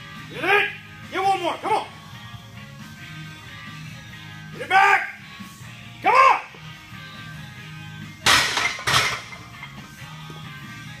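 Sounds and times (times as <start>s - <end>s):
background music: 0.0s - 11.0s
barbell clanking onto metal hooks: 8.3s - 9.4s.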